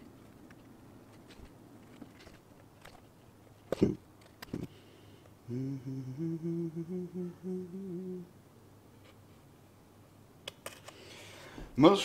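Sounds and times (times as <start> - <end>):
man humming: 3.7 - 4.8, 5.4 - 8.4.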